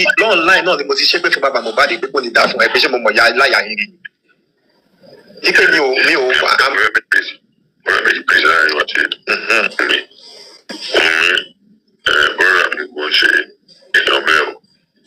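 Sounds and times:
person talking: 0.0 - 4.1, 5.3 - 11.5.

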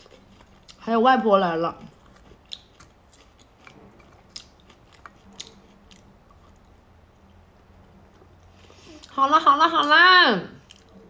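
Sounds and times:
person chewing: 0.0 - 0.8, 1.8 - 9.1, 10.6 - 11.0.

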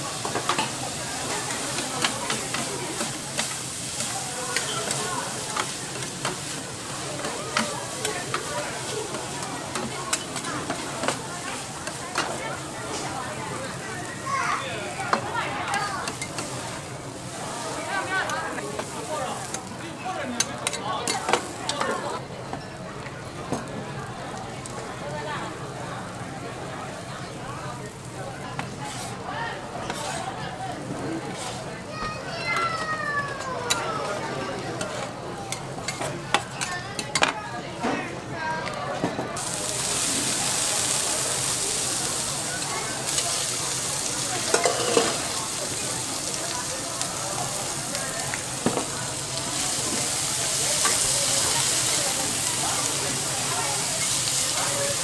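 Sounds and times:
noodles sizzling on griddle: 0.0 - 37.8, 38.6 - 55.0
metal spatulas scraping: 28.8 - 29.2, 29.8 - 30.4, 31.3 - 31.6, 44.5 - 45.2.

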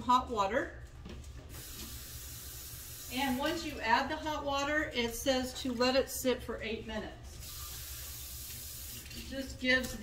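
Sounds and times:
kitchen tap running water: 1.5 - 5.2, 7.4 - 10.0.

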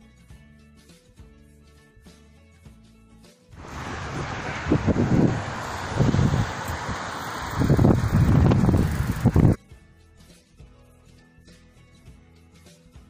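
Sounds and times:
wind buffeting microphone: 3.6 - 9.6.

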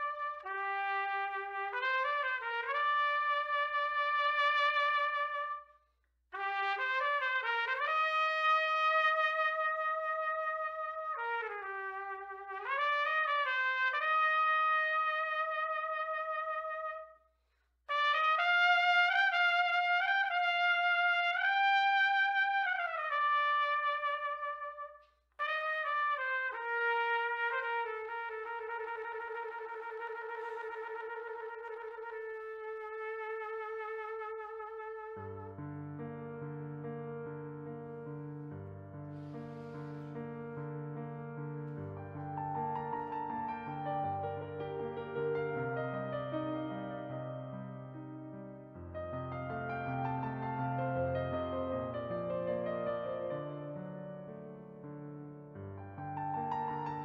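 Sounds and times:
solo trumpet melody: 0.0 - 17.3, 17.9 - 37.7, 38.7 - 54.4, 55.8 - 57.0.

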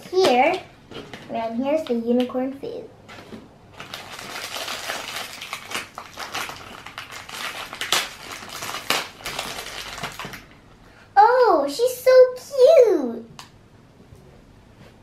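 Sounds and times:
wrapper crackling: 3.1 - 10.6.

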